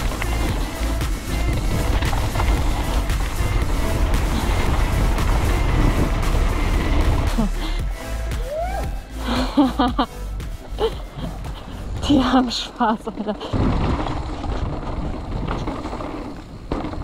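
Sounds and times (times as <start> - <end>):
bike tyres rumbling on gravel: 0.0 - 8.0, 10.5 - 17.0
music: 0.0 - 13.5
wind buffeting microphone: 1.3 - 7.3.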